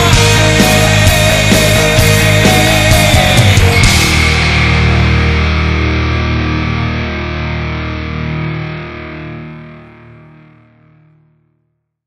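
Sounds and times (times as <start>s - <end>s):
distorted electric guitar chord: 0.0s - 11.2s.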